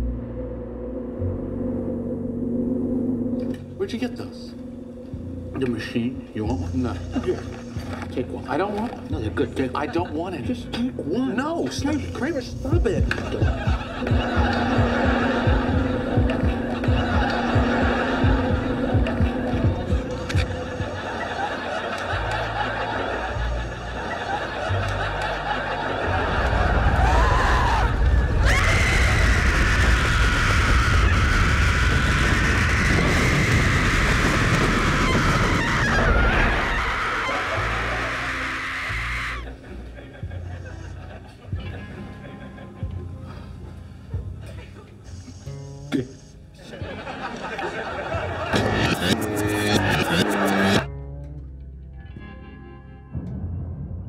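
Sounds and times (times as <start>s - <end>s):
low throbbing drone: 0.0s - 3.8s, 13.0s - 38.2s, 47.8s - 54.0s
loud rushing roar: 26.1s - 38.0s
woman screaming: 27.0s - 39.5s.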